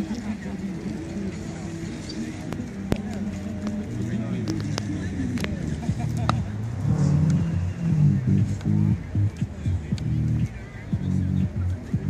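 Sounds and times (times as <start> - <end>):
music with low bass line: 0.0 - 12.0.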